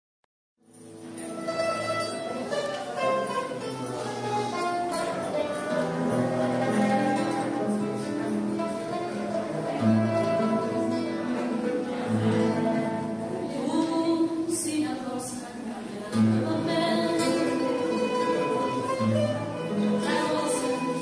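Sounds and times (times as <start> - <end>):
acoustic guitar: 0.6 - 21.0
mandolin: 0.6 - 21.0.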